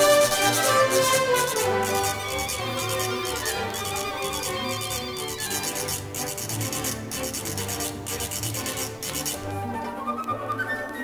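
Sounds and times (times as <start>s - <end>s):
scraping shaking percussion rhythm: 0.0s - 9.5s
orchestral music: 0.0s - 11.0s.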